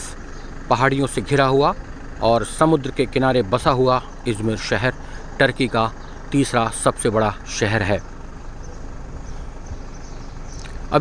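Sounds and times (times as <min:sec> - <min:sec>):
man's voice: 0:00.0 - 0:08.1
low outdoor rumble: 0:00.0 - 0:11.0.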